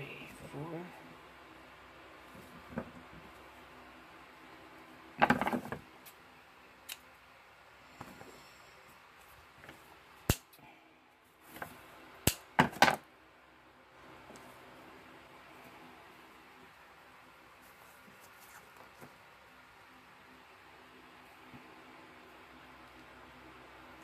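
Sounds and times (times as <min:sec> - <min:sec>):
scissors snipping wire: 0:10.2 - 0:10.6, 0:12.3 - 0:12.5.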